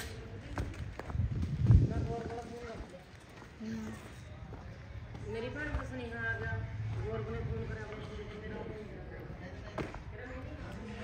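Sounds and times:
footsteps on dirt: 0.4 - 10.7.

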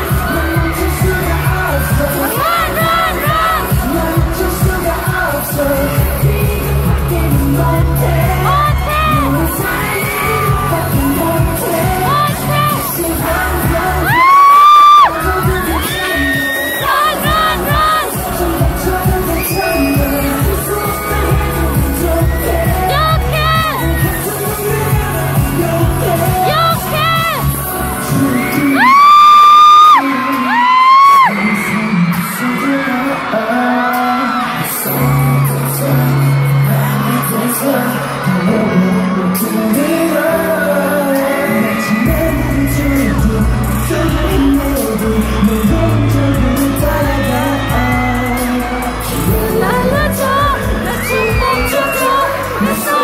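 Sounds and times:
heavy bass beat: 0.0 - 29.1, 42.0 - 53.0
live pop music with singing: 0.0 - 53.0.

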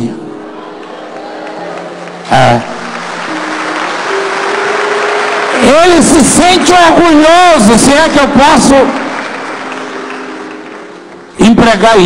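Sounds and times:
crowded hall noise: 0.0 - 12.0.

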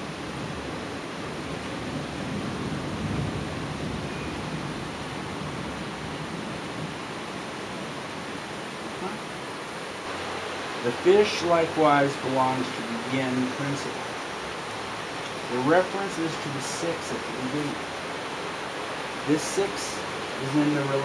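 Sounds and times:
steady rushing noise: 9.6 - 21.0.

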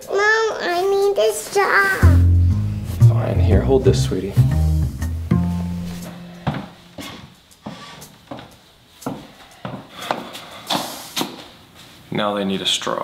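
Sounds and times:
background music: 2.0 - 7.6
footsteps on wooden stairs: 5.3 - 11.5.

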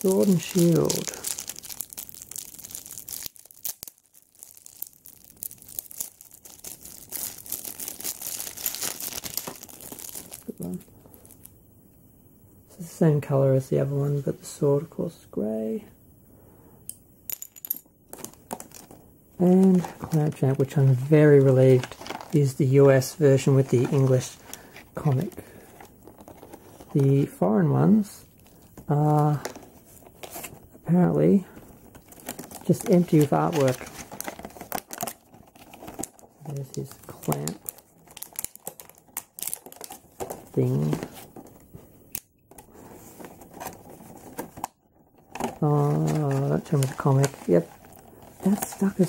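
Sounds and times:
plastic packaging crinkling: 0.0 - 11.5, 18.2 - 27.3, 31.4 - 41.7, 42.5 - 49.0.

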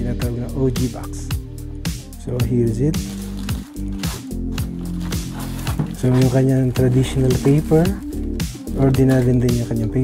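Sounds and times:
crisp percussion: 0.3 - 10.0.

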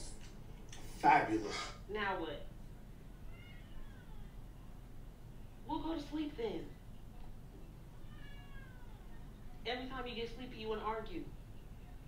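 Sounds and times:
cat meowing: 3.3 - 4.3, 8.0 - 9.1.

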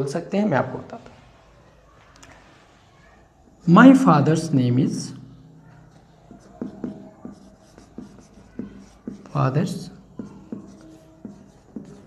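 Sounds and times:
marker pen writing on whiteboard: 3.8 - 12.0.

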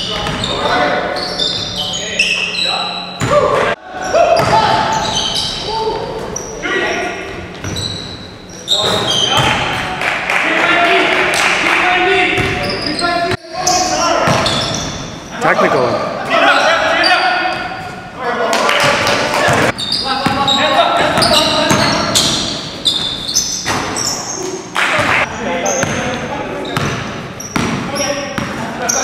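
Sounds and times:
sneakers squeaking on gym floor: 0.0 - 3.7, 4.3 - 9.7, 12.4 - 18.1, 19.5 - 29.0
players calling out: 10.6 - 17.8
basketball bouncing: 18.9 - 20.4, 25.8 - 26.1, 26.8 - 28.6.

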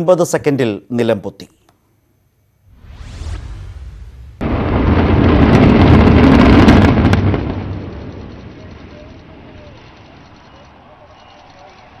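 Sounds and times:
explosive charges cracking: 2.6 - 10.2
building collapsing rumble: 2.7 - 10.3.

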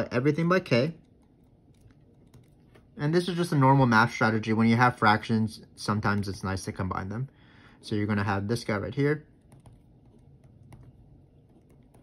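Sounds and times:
pen writing on paper: 9.4 - 12.0.

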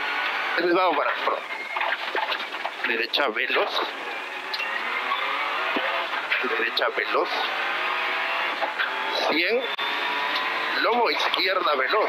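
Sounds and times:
rally car engine under load: 0.0 - 12.0
tyres on gravel: 0.6 - 4.1.

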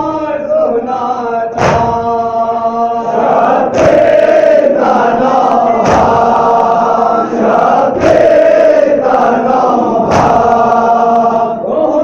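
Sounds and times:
men chanting together: 0.0 - 12.0
hands slapping chests: 3.7 - 4.3, 8.0 - 8.4, 10.0 - 10.6.

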